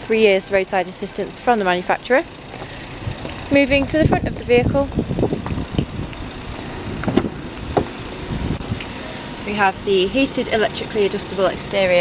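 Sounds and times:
outdoor background noise: 0.0s - 12.0s
car door knocks and clicks: 7.0s - 8.0s.

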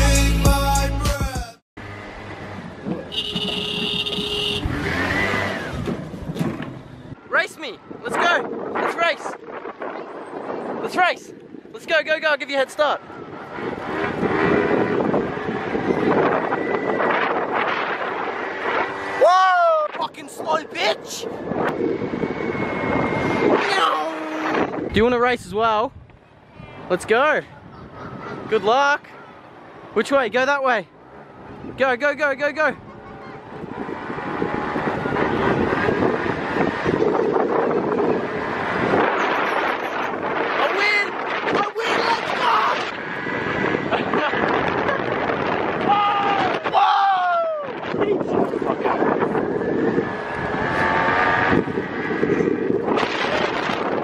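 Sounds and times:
wind rushing over microphone: 2.3s - 54.0s
person shouting: 19.2s - 21.1s, 23.6s - 24.7s, 41.6s - 42.8s, 45.8s - 47.8s
person yelling: 19.2s - 21.1s, 23.6s - 24.7s, 40.6s - 42.9s, 45.8s - 47.8s.

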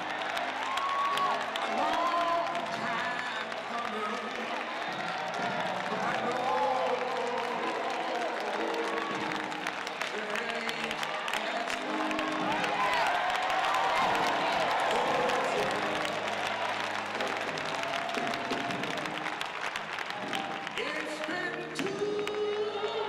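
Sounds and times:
audience applause and calls: 0.0s - 23.0s
man singing: 1.3s - 9.4s, 10.0s - 12.7s, 14.4s - 16.3s, 20.8s - 23.0s.

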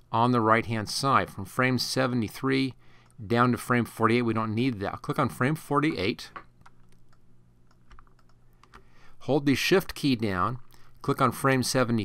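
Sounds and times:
low steady hum: 0.0s - 12.0s
computer mouse and keyboard clicks: 6.6s - 8.9s.

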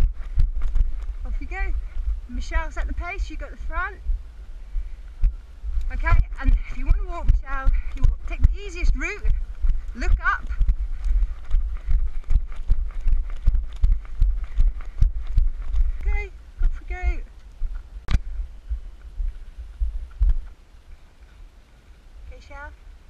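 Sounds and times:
running footsteps on dirt trail: 0.0s - 21.4s
low microphone rumble: 0.0s - 23.0s
woman calling out: 16.0s - 17.3s.

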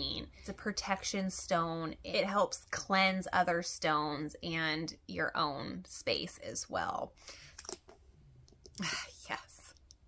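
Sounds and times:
woman speaking: 0.0s - 7.1s, 8.8s - 9.8s.

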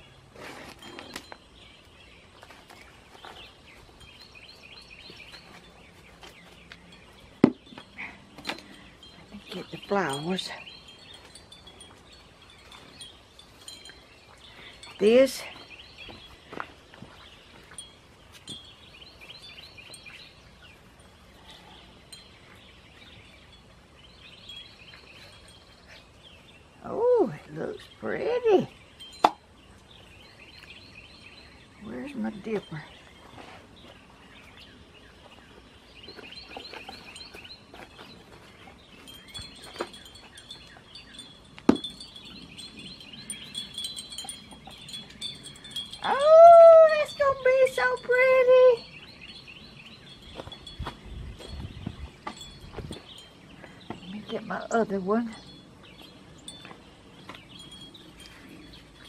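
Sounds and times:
wind chimes tinkling: 0.6s - 33.4s, 36.1s - 59.0s.

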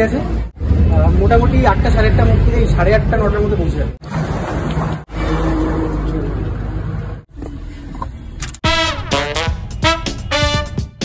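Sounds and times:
road traffic noise: 0.0s - 11.0s
music: 8.6s - 11.0s.

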